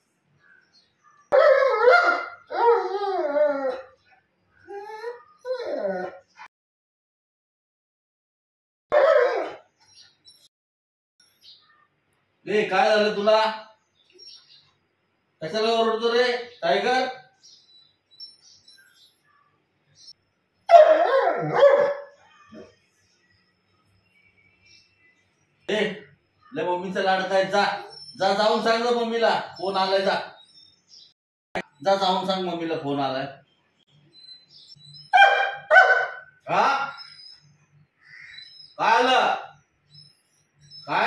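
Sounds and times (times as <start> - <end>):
dog barking: 1.3 - 2.5, 8.9 - 9.6, 20.7 - 22.8, 35.1 - 36.3
dog howling: 1.3 - 4.0, 4.7 - 6.2, 8.9 - 9.6, 20.7 - 22.7.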